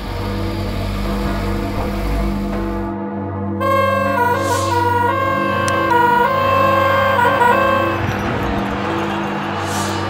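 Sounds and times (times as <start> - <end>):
fanfare horn tooting: 3.6 - 8.8
crowd noise: 3.6 - 10.0.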